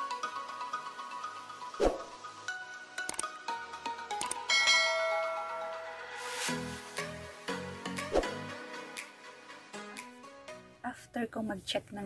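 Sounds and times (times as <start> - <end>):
background music: 0.0 - 11.7
bright bell chime: 4.5 - 6.2.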